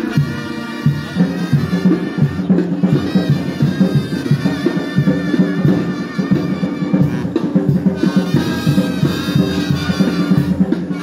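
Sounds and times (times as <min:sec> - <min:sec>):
brass band with drums: 0:00.0 - 0:11.0.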